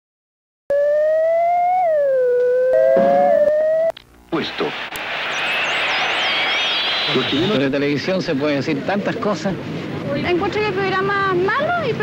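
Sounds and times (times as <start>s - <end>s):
wavering electronic tone: 0.7s - 3.9s, 5.3s - 7.7s
television static hiss: 3.9s - 12.0s
faint wavering whistles: 5.1s - 7.8s.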